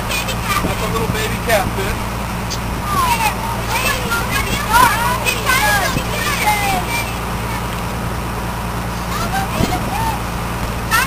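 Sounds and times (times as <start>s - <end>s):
children chattering: 0.0s - 1.4s, 2.5s - 11.0s
boat engine humming: 0.0s - 11.0s.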